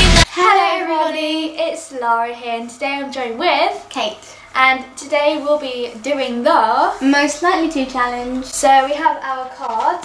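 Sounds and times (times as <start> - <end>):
intro music: 0.0 - 0.3
girl singing long sliding notes: 0.0 - 1.6.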